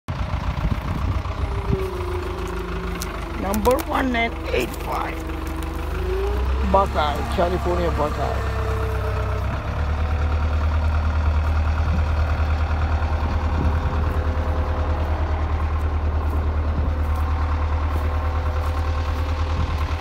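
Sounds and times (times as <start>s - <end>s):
large engine idling: 0.1s - 20.0s.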